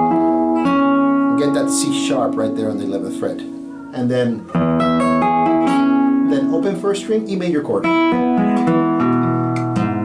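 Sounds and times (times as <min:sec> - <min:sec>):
nylon-string guitar chords: 0:00.0 - 0:10.0.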